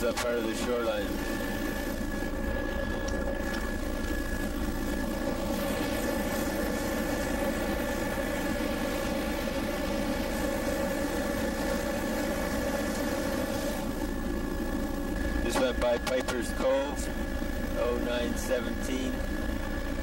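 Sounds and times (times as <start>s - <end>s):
aircraft engine drone: 0.0s - 20.0s.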